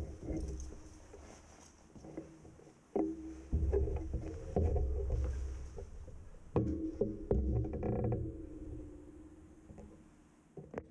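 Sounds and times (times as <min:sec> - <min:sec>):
steady low hum: 0:00.0 - 0:01.8, 0:03.1 - 0:10.5
creak: 0:00.0 - 0:10.9
low knocks: 0:03.0 - 0:10.1.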